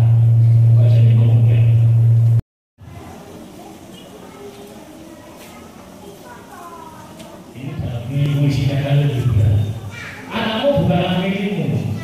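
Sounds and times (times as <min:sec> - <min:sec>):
sound system hum: 0:00.0 - 0:02.4
faint voices: 0:02.8 - 0:12.0.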